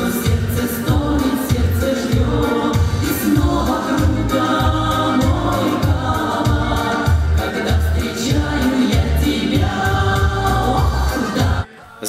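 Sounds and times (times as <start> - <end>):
amplified instrumental accompaniment: 0.0 - 11.7
women singing in harmony: 0.0 - 11.8.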